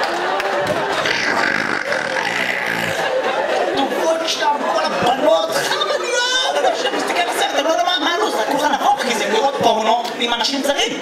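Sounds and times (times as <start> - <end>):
man crying into microphone: 0.9 - 3.1.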